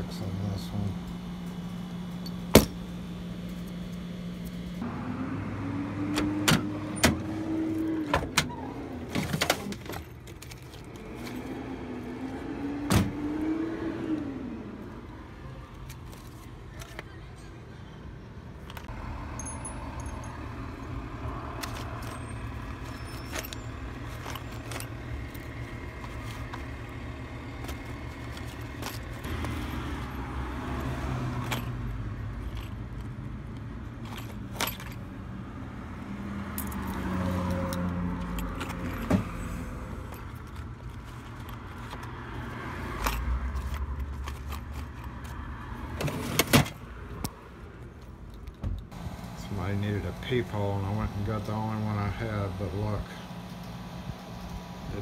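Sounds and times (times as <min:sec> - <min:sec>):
metal lock parts rattling: 0:21.5 - 0:26.8, 0:27.6 - 0:30.2, 0:31.3 - 0:35.1, 0:36.5 - 0:42.2, 0:42.9 - 0:45.4.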